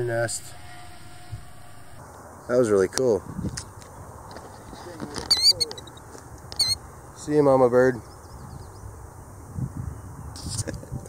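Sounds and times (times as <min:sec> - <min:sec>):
bird calling high wavering notes: 0:00.0 - 0:02.0.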